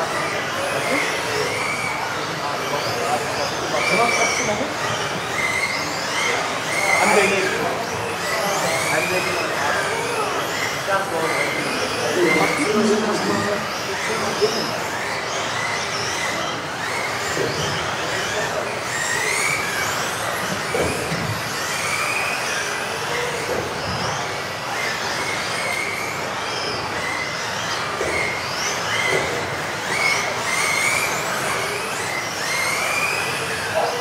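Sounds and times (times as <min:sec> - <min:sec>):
electric toy car motors whining: 0:00.0 - 0:34.0.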